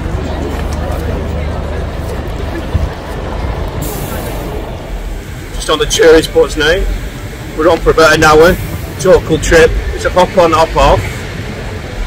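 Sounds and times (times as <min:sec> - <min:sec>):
bus engine rumbling: 0:00.0 - 0:12.0
air hiss: 0:03.8 - 0:09.3.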